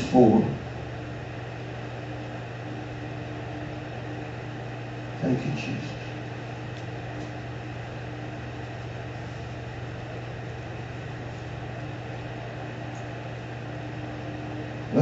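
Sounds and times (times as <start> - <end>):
low room hum and hiss: 0.0 - 15.0.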